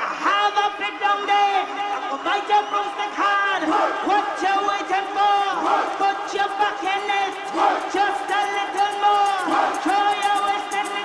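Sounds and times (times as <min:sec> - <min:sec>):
techno music: 0:04.4 - 0:11.0
fast hi-hat ticks: 0:04.6 - 0:11.0.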